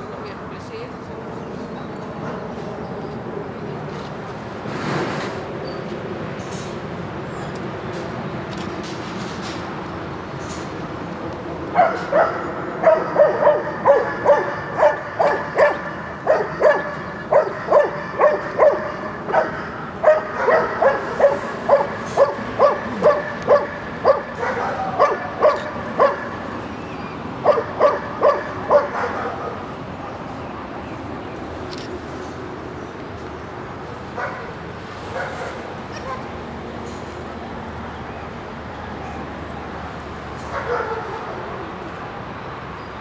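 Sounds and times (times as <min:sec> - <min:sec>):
dog barking in high yips: 0:11.8 - 0:26.4, 0:40.5 - 0:41.3.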